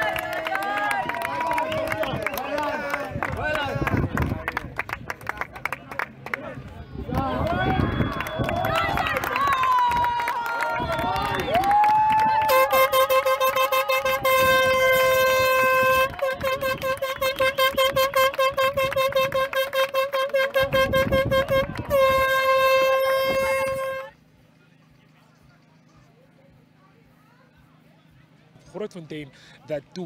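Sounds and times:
crowd clapping and cheering: 0:00.0 - 0:23.9
faint hum: 0:00.0 - 0:30.0
hand-held air horn blasts: 0:12.3 - 0:24.2.

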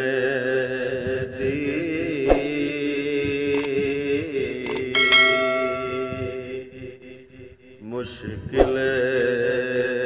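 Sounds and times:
short clicks: 0:03.5 - 0:03.8, 0:04.6 - 0:04.9
man singing a long note: 0:03.9 - 0:07.1
bright bell chime: 0:05.0 - 0:06.8.

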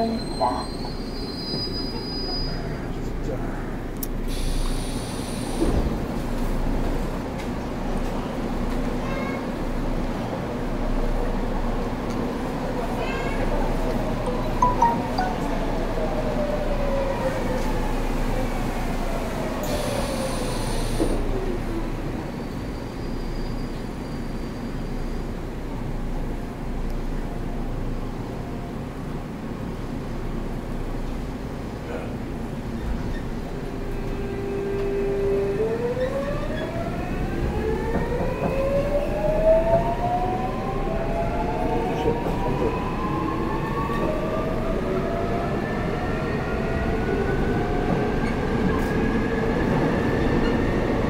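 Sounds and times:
subway train rumble and whine: 0:00.0 - 0:51.0.

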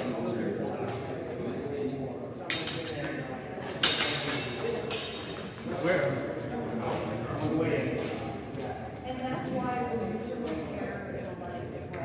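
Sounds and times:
swords clashing: 0:02.5 - 0:03.2, 0:03.8 - 0:05.4.

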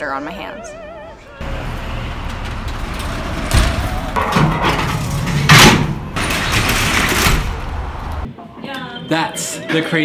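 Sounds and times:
metal roll-up door rattling: 0:01.6 - 0:07.7.

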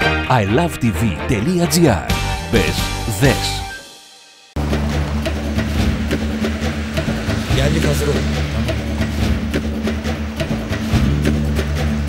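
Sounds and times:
sustained low notes: 0:04.6 - 0:12.0.

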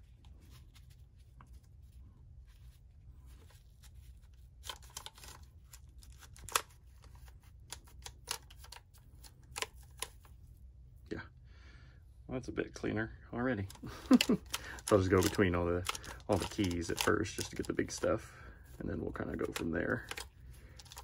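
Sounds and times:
paper towel scrubbing plastic: 0:00.0 - 0:10.4, 0:13.7 - 0:21.0
steady low hum: 0:00.0 - 0:21.0.

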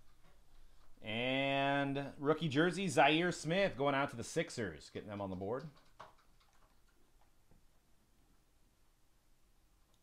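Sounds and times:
trading cards ticking: 0:05.0 - 0:07.0.

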